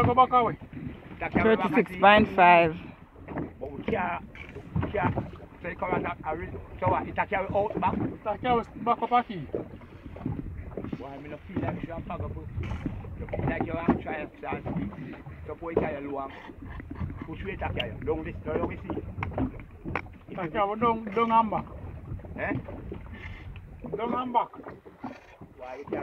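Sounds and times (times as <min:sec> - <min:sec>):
wind rumble on microphone: 0:00.0 - 0:26.0
people talking: 0:01.2 - 0:02.8.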